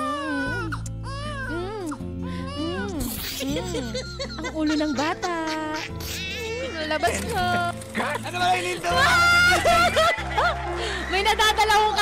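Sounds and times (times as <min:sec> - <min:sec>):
infant crying: 0:00.0 - 0:07.1.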